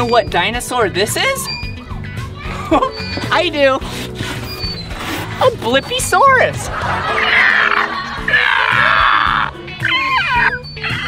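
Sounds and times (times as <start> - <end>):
background music: 0.0 - 11.0
gliding vocal squeal: 4.3 - 11.0.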